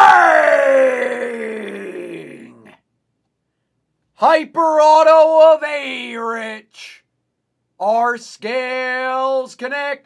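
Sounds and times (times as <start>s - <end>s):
man yelling excitedly: 0.0s - 2.6s.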